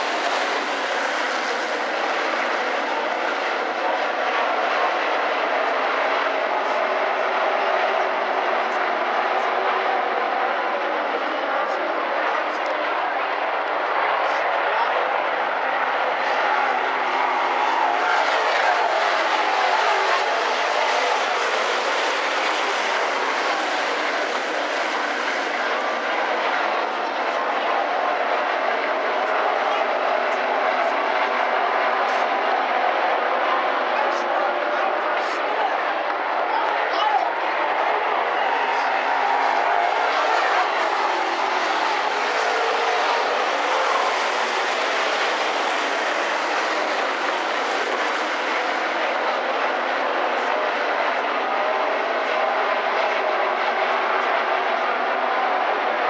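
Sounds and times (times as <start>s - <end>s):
race car engines: 0.0s - 56.0s.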